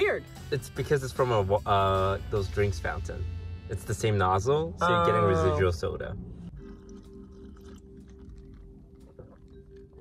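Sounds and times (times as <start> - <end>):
soft background music: 0.0 - 10.0
sipping water: 6.4 - 10.0.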